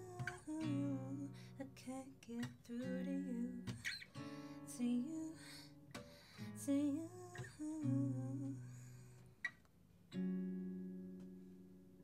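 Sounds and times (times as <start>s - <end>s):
acoustic guitar chord strummed: 0.0s - 9.3s, 10.1s - 11.9s.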